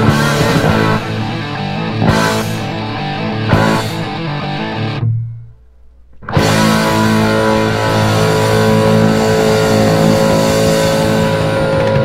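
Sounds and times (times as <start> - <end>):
bass guitar: 0.0 - 12.0
distorted electric guitar chord: 0.0 - 12.0.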